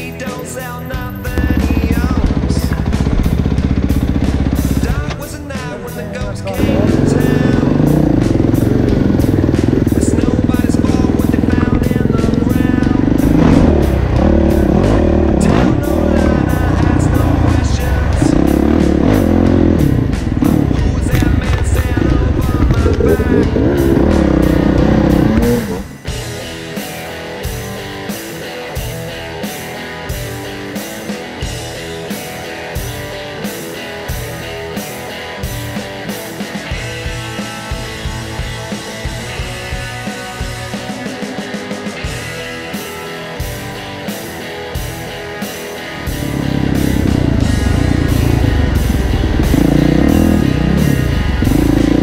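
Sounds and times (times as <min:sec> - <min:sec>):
dirt bike engine revving: 0:01.2 - 0:26.5, 0:45.9 - 0:52.0.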